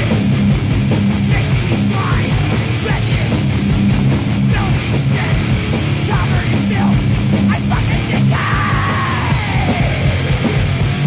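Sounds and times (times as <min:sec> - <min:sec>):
distorted guitars: 0:00.0 - 0:11.0
drums: 0:00.0 - 0:11.0
person yelling: 0:08.3 - 0:10.0.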